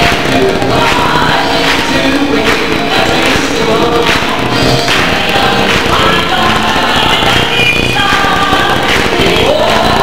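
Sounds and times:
gospel choir singing: 0:00.0 - 0:10.0
woman singing into microphone: 0:00.3 - 0:10.0.

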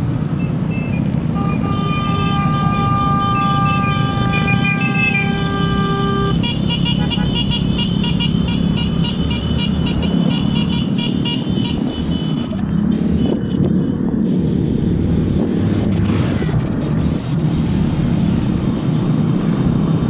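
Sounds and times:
motorcycle engines: 0:00.0 - 0:20.0
road rumble: 0:00.0 - 0:20.0.

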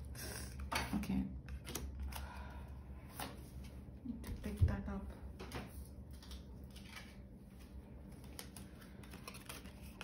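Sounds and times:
low room hum: 0:00.0 - 0:10.0
cards tapping and rustling: 0:05.4 - 0:10.0.

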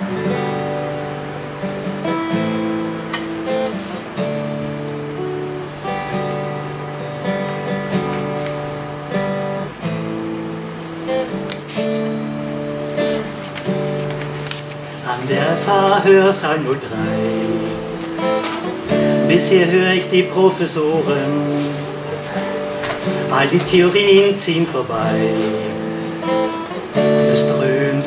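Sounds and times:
acoustic guitar strumming: 0:00.0 - 0:28.0.

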